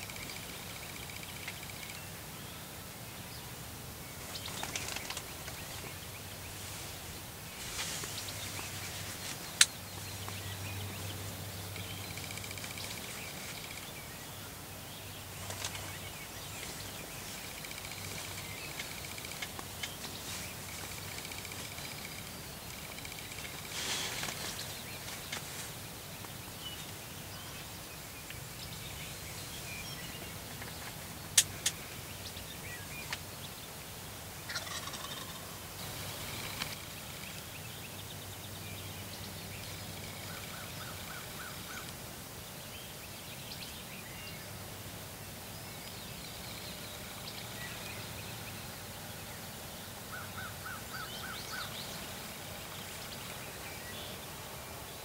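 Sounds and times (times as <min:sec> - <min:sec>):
small birds chirping: 0:00.0 - 0:55.0
wild turkeys calling: 0:34.5 - 0:35.6.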